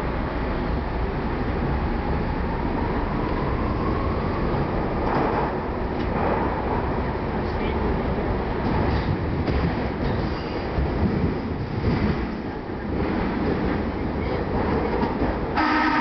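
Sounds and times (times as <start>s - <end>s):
train wheels rumbling on rail: 0.0s - 16.0s.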